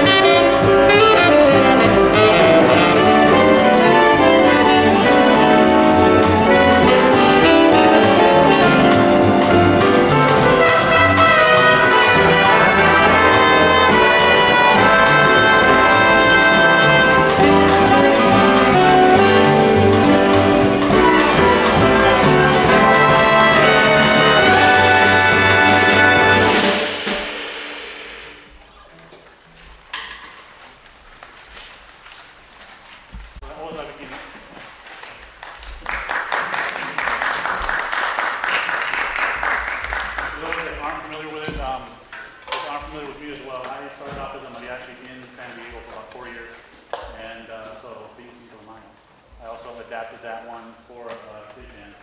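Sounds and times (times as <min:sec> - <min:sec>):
jazz big band playing: 0:00.0 - 0:29.2, 0:37.0 - 0:46.9
indistinct talking in a hall: 0:28.0 - 0:32.2.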